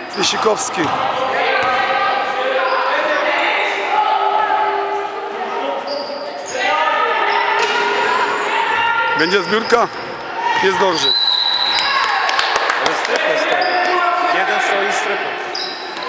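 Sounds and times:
sneakers squeaking on floor: 0.0 - 3.3, 5.8 - 6.6, 7.2 - 12.0, 15.4 - 16.0
players calling: 0.0 - 16.0
basketball bouncing: 0.8 - 1.8.

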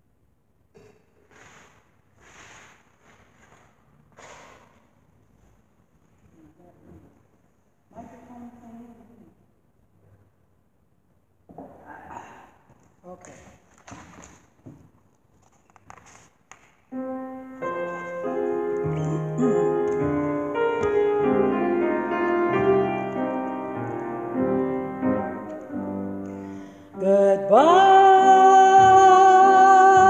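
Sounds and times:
piano playing chords: 16.9 - 30.0.

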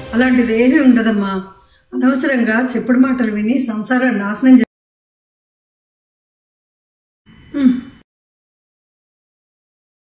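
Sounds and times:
woman gasping: 7.3 - 8.0.

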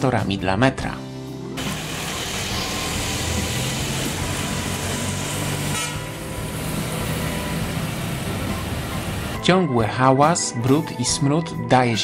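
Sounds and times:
tyres hissing on wet road: 1.6 - 9.4
vehicle engines running: 1.6 - 9.4.

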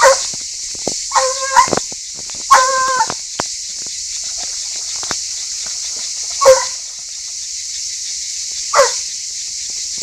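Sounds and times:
hound baying: 0.0 - 0.3, 1.1 - 1.8, 2.5 - 3.2, 6.3 - 6.9, 8.7 - 9.0.

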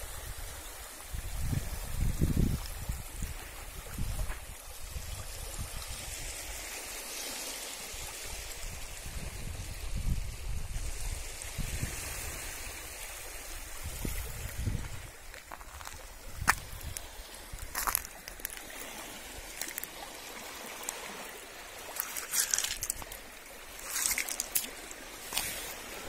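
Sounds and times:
small waves lapping over stones: 0.1 - 9.8, 10.8 - 26.0.

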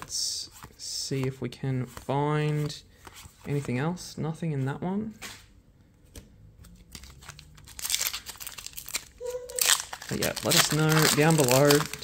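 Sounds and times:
foil wrapper crinkling and tearing: 7.0 - 12.0.

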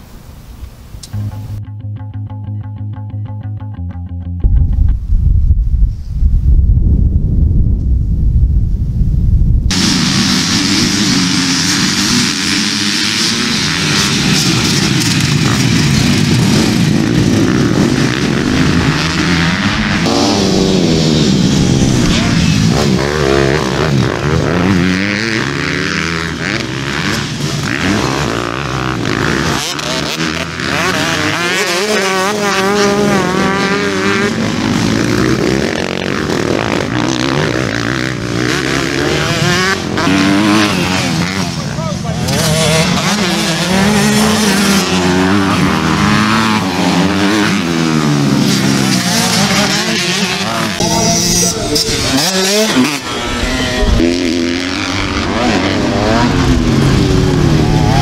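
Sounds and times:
motocross bike engines revving: 9.7 - 58.0.

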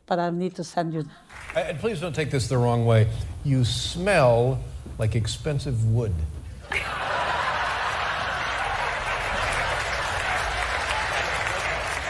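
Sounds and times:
audience applauding: 1.3 - 2.2, 6.7 - 12.0.

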